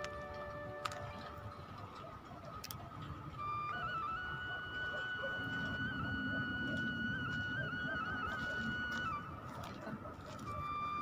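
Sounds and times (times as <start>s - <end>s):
flute holding a high note: 3.4s - 9.6s.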